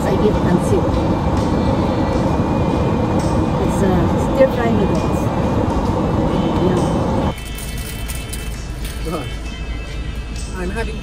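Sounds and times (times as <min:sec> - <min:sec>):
indistinct talking: 0:00.0 - 0:07.3
low hum: 0:00.0 - 0:08.8
background music: 0:00.0 - 0:11.0.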